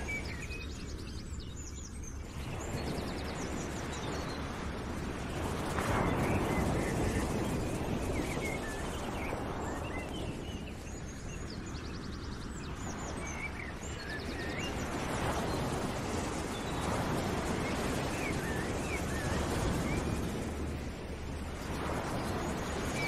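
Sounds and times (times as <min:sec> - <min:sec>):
steady rushing noise: 0:00.0 - 0:23.0.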